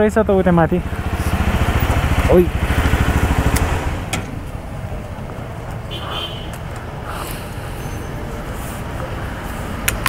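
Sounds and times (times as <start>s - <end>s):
motorcycle engine idling: 0.0s - 9.4s.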